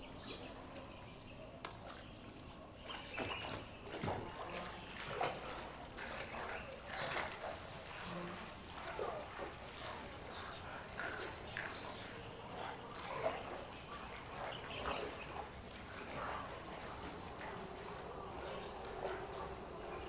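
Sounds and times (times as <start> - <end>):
birds chirping: 0.0 - 20.0.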